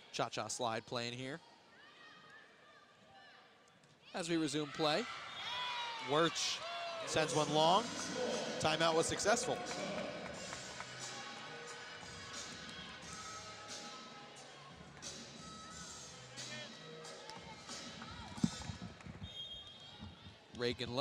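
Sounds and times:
faint arena music over pa: 6.2 - 21.0.

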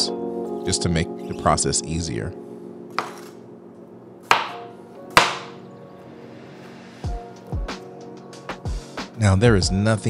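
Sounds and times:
knife chopping on cutting board: 3.0 - 3.4, 4.2 - 5.6.

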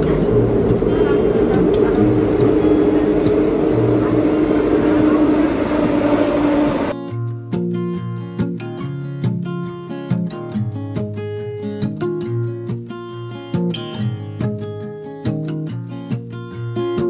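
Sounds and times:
subway train rumble: 0.0 - 7.0
guitar music: 0.0 - 17.0.

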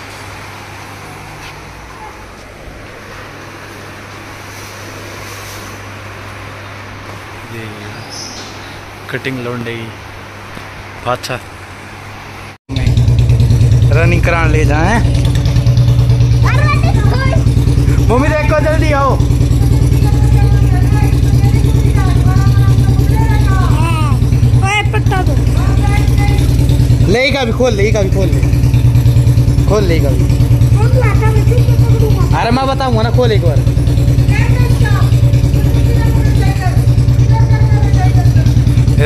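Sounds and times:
motorcycle engine running: 12.7 - 39.0.

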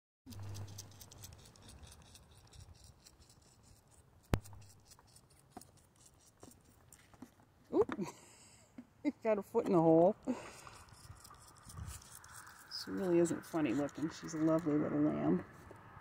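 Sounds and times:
lamb suckling from bottle: 0.3 - 3.8, 10.4 - 14.2.

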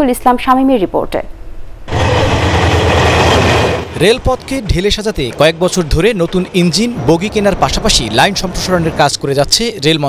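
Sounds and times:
train passing with rumble: 1.9 - 9.5.

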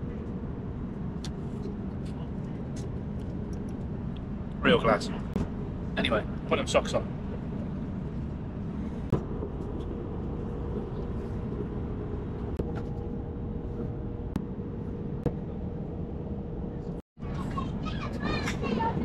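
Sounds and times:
airliner engines and airflow rumble: 0.0 - 19.0.

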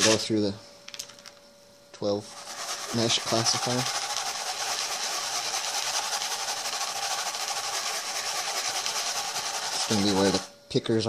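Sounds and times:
gravel swishing in plastic pan: 2.3 - 10.5.

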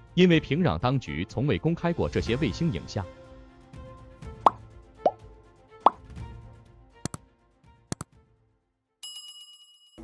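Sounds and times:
background music: 0.0 - 9.0
rising pop sound effects: 4.4 - 5.2, 5.8 - 6.1.

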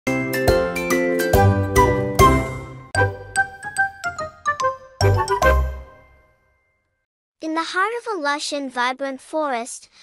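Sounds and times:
cheerful logo jingle: 0.1 - 6.8.

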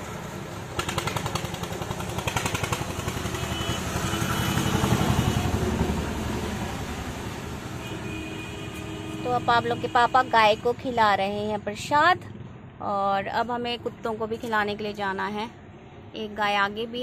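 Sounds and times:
vehicle engine passing by: 0.0 - 7.8.

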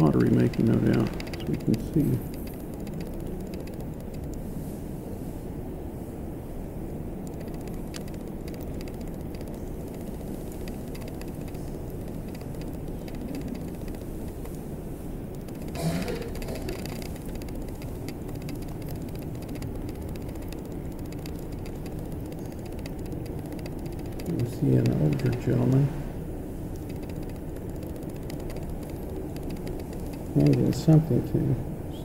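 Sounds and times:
faint clicks: 0.0 - 4.4, 7.2 - 14.6, 15.3 - 25.7, 26.7 - 31.1
low background rumble: 0.0 - 32.0.

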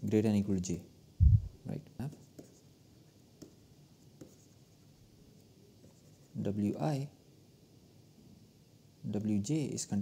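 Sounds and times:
stylus scratching on tablet: 2.1 - 2.7, 3.4 - 4.9.

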